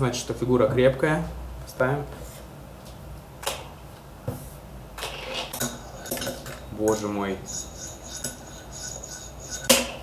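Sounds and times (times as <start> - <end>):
fingerboard scraping on block: 7.5 - 10.0.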